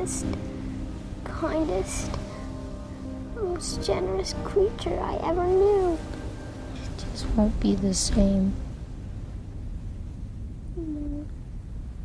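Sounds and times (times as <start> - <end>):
low steady hum: 0.0 - 12.0
soft whimper: 10.8 - 11.3.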